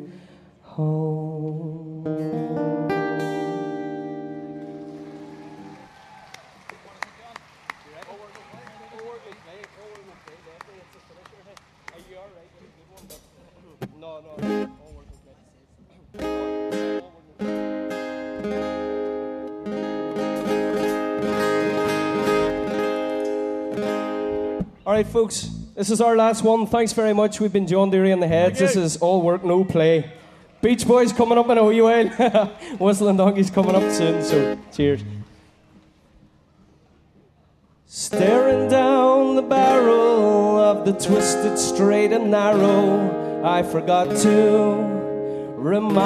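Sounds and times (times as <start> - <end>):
acoustic guitar strumming chords: 0.0 - 5.7, 14.3 - 15.0, 16.2 - 25.8, 33.2 - 35.2, 37.9 - 46.0
scattered clapping: 4.6 - 13.0
crowd voices: 28.2 - 40.1.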